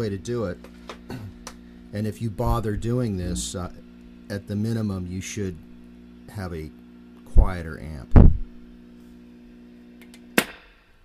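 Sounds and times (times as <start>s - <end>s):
guitar amplifier hum: 0.0s - 11.0s
sharp pop: 10.2s - 10.8s.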